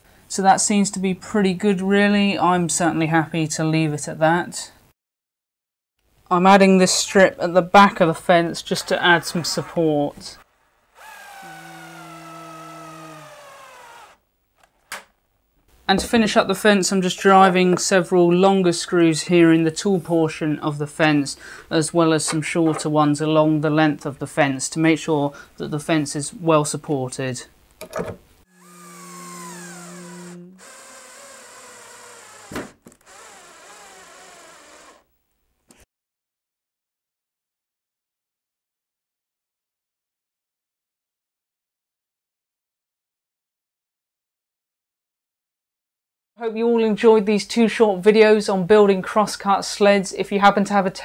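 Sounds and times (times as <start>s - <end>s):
cordless drill motor whine: 10.5s - 14.2s, 28.5s - 35.1s.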